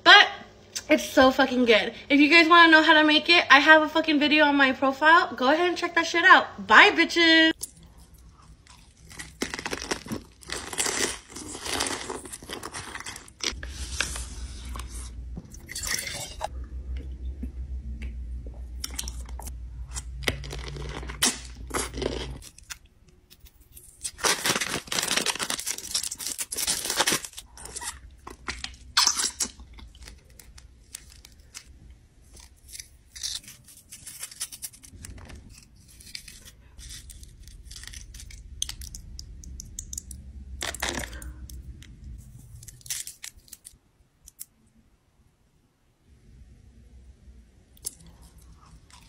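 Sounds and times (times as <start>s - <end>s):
snack packaging crinkling: 7.6s - 13.6s, 18.8s - 41.4s, 42.2s - 43.8s.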